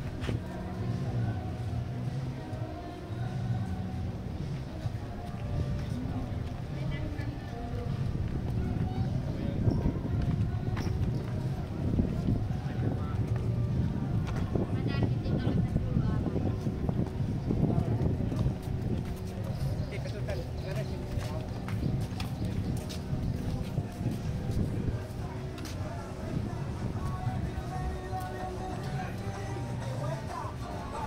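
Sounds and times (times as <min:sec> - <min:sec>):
footsteps on paving: 0:00.0 - 0:00.6, 0:04.4 - 0:29.4
chatter of voices: 0:00.0 - 0:31.0
low street rumble: 0:00.0 - 0:31.0
people talking faintly: 0:00.0 - 0:31.0.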